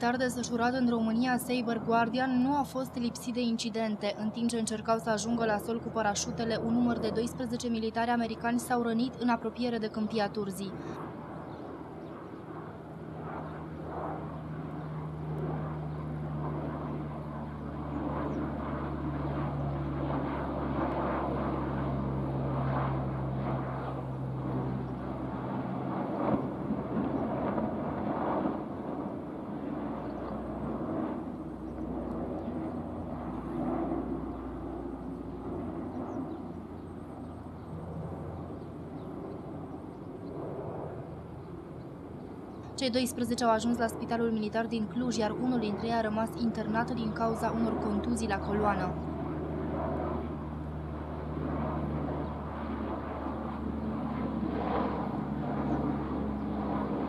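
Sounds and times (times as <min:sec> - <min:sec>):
propeller aircraft drone overhead: 0:00.0 - 0:57.0.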